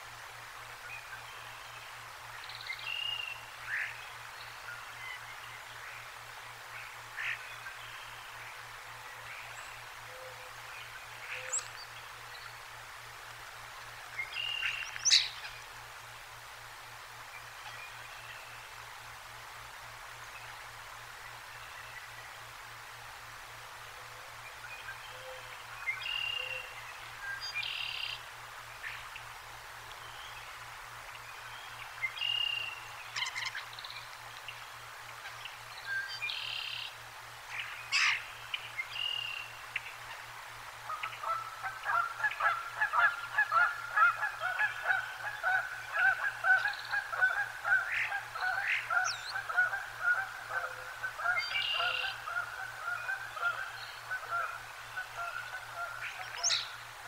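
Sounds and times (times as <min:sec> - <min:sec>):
wild birds calling: 0:37.5 - 0:57.0.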